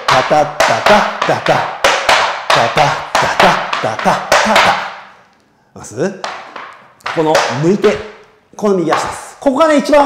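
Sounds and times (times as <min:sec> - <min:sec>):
tap shoes on wooden board: 0:00.0 - 0:05.0, 0:06.2 - 0:09.4.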